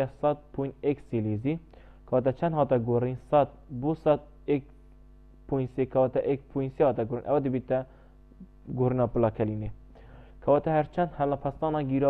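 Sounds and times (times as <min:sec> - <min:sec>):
man speaking: 0:00.0 - 0:04.7, 0:05.5 - 0:07.9, 0:08.6 - 0:09.8, 0:10.4 - 0:12.0
low electrical hum: 0:00.0 - 0:12.0.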